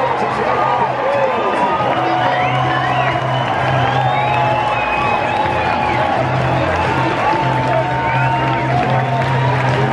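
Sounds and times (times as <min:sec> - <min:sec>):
music over public-address system: 0:00.0 - 0:09.9
stadium crowd cheering and whooping: 0:00.0 - 0:09.9.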